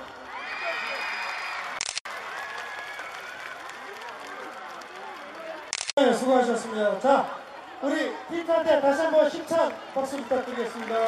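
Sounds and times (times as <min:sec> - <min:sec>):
audience applauding: 0:00.0 - 0:05.7, 0:09.2 - 0:11.0.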